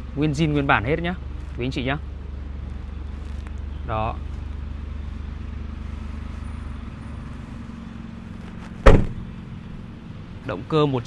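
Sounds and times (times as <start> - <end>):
car tailgate shutting thud: 8.8 - 9.3.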